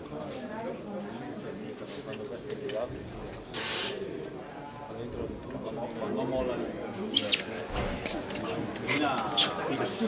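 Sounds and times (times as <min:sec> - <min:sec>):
sharp high squeaks: 0:07.1 - 0:07.5.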